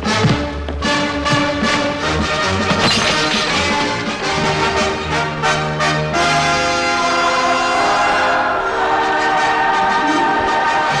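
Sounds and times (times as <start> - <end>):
orchestral brass chords: 4.2 - 11.0.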